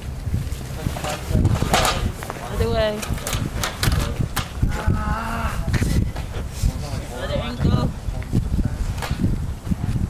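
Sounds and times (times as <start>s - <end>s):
steady low rumble: 0.0s - 10.0s
indistinct voices: 0.7s - 8.8s.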